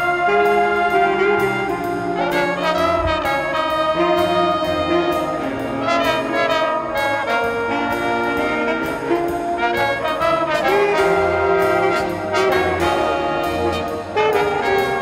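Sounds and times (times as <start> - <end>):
brass and reeds chords: 0.0 - 15.0.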